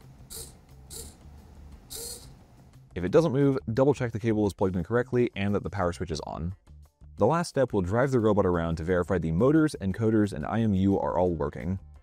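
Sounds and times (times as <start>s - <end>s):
servo motor whirring: 0.3s - 1.2s, 1.9s - 2.4s.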